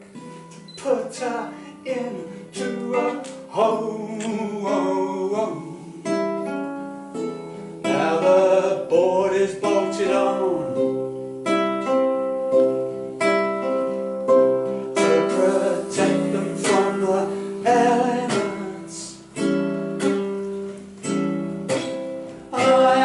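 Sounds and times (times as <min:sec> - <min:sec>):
classical guitar fingerstyle: 0:00.0 - 0:23.0.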